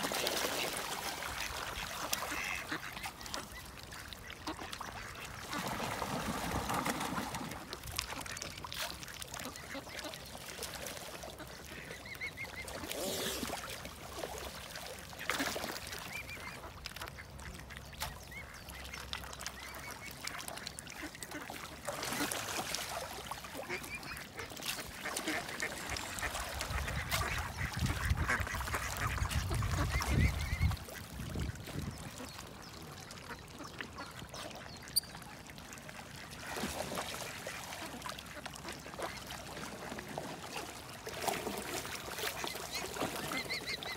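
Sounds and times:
ducks dabbling in water: 0.0s - 43.9s
ducks quacking: 0.5s - 5.8s, 19.6s - 35.0s.

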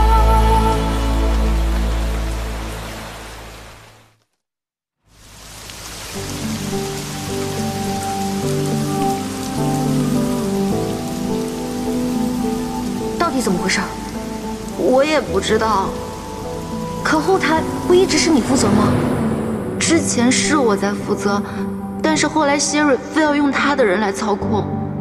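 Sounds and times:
slow background music: 0.0s - 3.6s, 5.6s - 25.0s
rain falling on a car: 5.1s - 18.5s.

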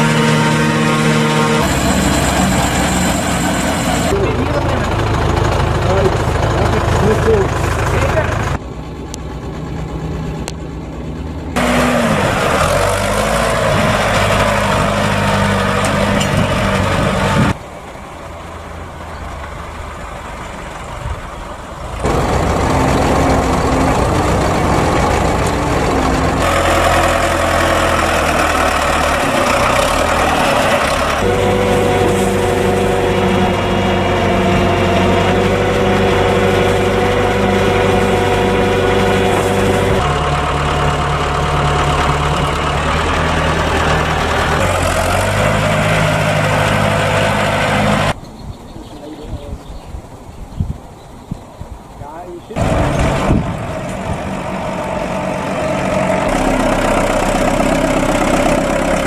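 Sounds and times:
machinery humming: 0.0s - 48.2s
diesel tractor engines running: 0.0s - 50.4s, 51.2s - 59.0s.

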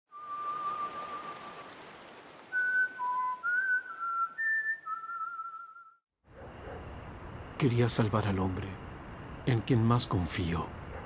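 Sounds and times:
slow whistled melody: 0.1s - 1.8s, 2.4s - 6.0s
rain-like hiss with crackles: 0.1s - 5.6s, 6.9s - 11.0s.

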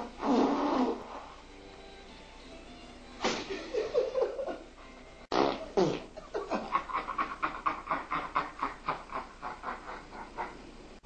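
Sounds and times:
person farting: 0.0s - 1.3s, 5.3s - 6.2s.

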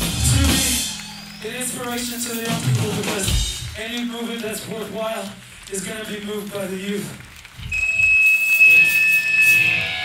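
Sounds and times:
electric guitar feedback whine: 7.7s - 10.0s.

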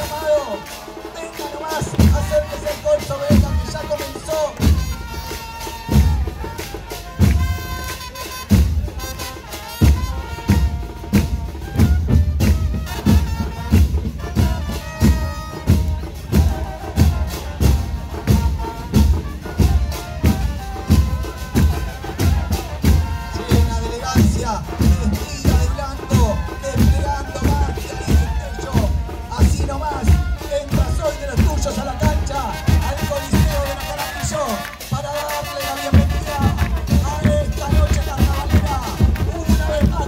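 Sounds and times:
brass horns playing melody: 0.0s - 40.0s
bass drums pounding: 1.7s - 35.1s, 35.9s - 40.0s.

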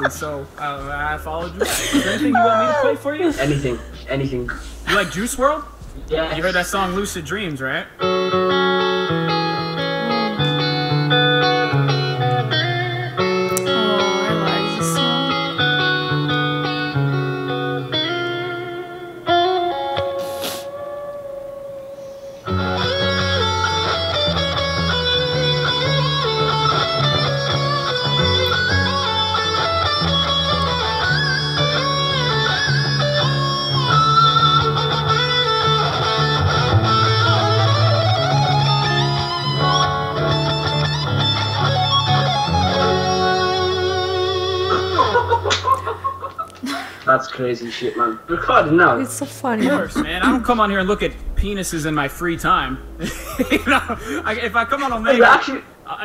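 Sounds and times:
electric guitar playing: 0.0s - 46.4s, 48.3s - 55.8s.

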